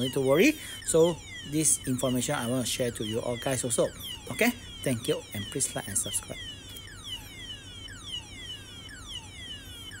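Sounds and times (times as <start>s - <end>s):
burglar alarm siren: 0.0s - 10.0s.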